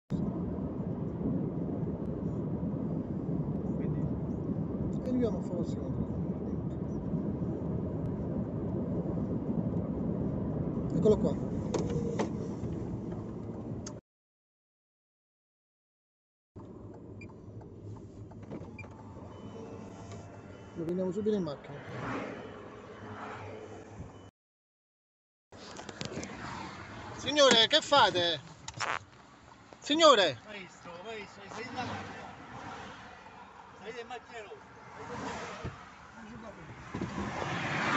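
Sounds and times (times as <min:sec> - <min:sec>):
car interior road rumble: 0:00.1 - 0:14.0, 0:16.6 - 0:21.8, 0:25.6 - 0:37.9.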